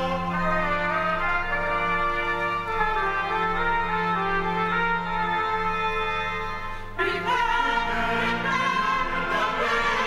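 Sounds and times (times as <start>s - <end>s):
choir singing an anthem: 7.0s - 10.0s.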